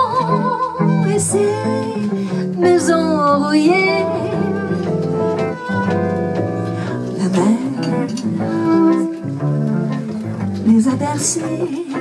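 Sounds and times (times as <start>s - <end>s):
acoustic jazz band playing: 0.0s - 12.0s
plucked double bass: 0.0s - 12.0s.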